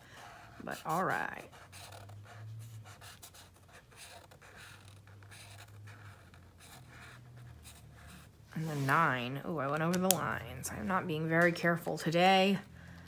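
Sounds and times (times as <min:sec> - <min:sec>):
marker scratching on paper: 0:00.2 - 0:10.2.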